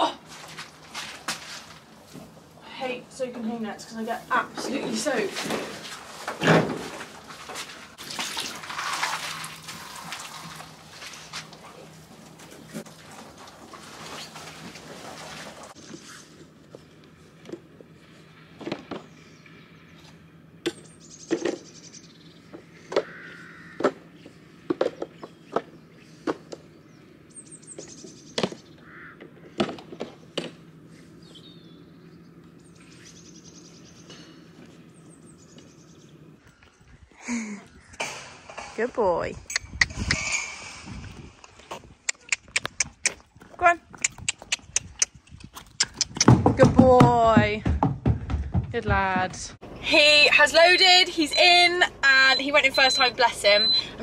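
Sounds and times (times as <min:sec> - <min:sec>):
birds chirping: 0:17.8 - 0:40.6, 0:48.8 - 0:54.0.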